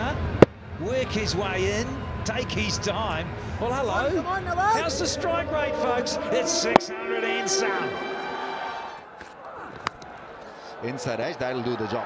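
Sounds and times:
faint crowd noise: 0:00.0 - 0:12.0
held musical tone: 0:02.8 - 0:09.0.

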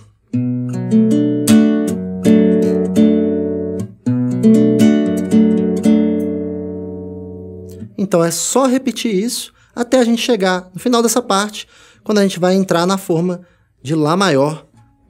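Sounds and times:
fingerpicked classical guitar: 0:00.0 - 0:08.8, 0:14.5 - 0:15.0.

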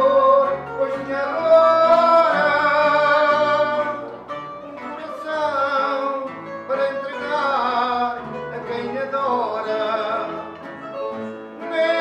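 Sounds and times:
guitars playing: 0:00.0 - 0:12.0.

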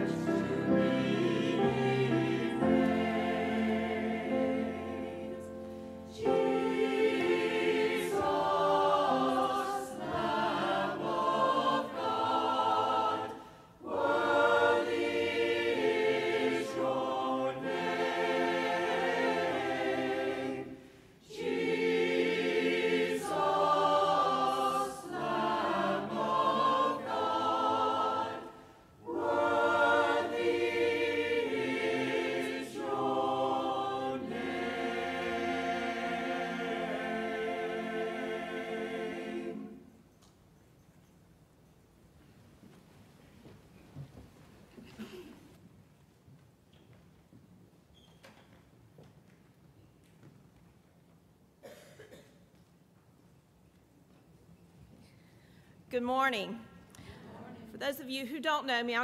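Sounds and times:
mixed choir singing: 0:00.0 - 0:40.1.

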